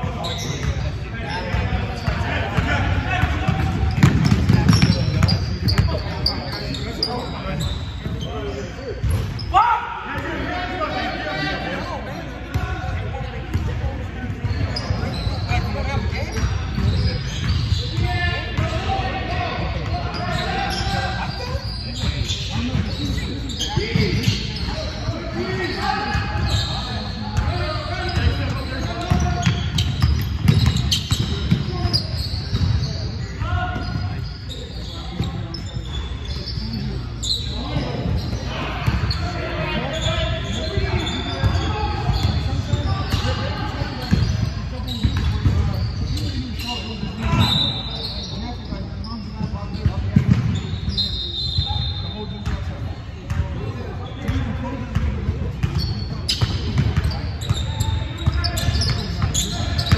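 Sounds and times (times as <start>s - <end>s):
players calling out: 0.1s - 49.2s.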